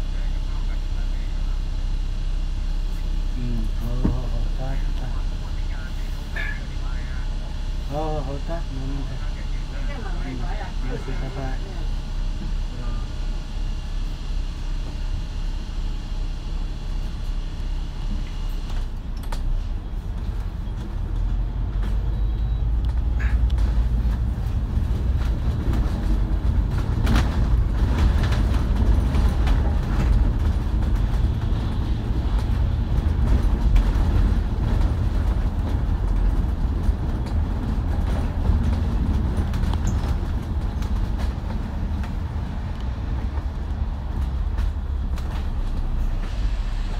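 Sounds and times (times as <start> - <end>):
bus diesel engine rumbling: 0.0 - 46.9.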